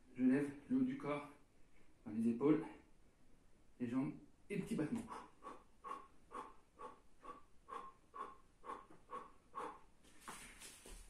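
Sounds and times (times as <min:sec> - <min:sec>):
man's rhythmic breathing: 0:05.0 - 0:11.0.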